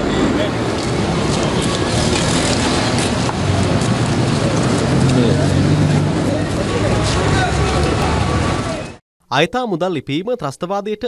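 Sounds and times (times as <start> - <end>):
road traffic: 0.0 - 9.0
people talking: 5.1 - 11.0.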